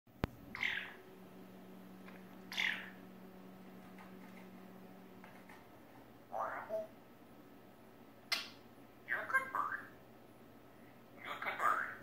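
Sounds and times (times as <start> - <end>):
faint steady hum: 0.1 - 12.0
parrot calls: 0.5 - 1.0, 2.5 - 3.0, 6.3 - 6.9, 8.3 - 10.0, 11.2 - 12.0.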